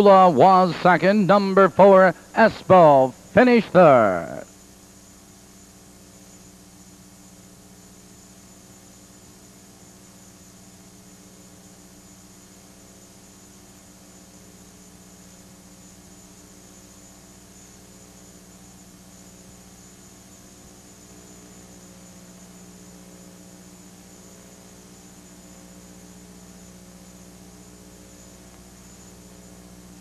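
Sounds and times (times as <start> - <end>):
electrical hum with hiss: 0.0 - 30.0.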